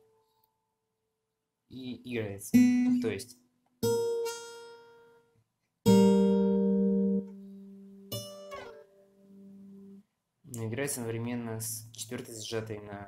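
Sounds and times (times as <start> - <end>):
fingerpicked acoustic guitar: 2.5 - 3.2, 3.8 - 10.0.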